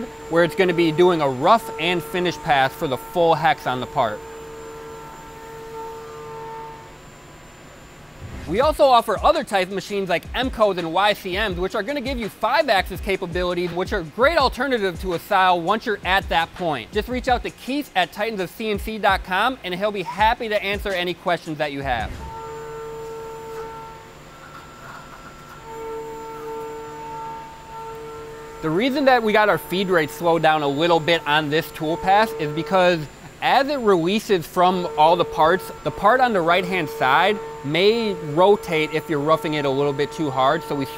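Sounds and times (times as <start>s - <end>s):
milling machine cutting metal: 0.0s - 9.4s, 22.0s - 40.9s
spindle hum: 0.0s - 40.9s.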